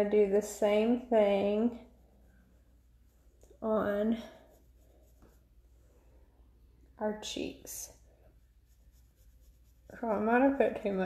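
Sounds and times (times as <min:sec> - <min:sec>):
woman speaking: 0:00.0 - 0:01.9, 0:03.6 - 0:04.4, 0:07.0 - 0:08.0, 0:09.9 - 0:11.0
makeup brush brushing on face: 0:00.6 - 0:06.1, 0:07.2 - 0:11.0.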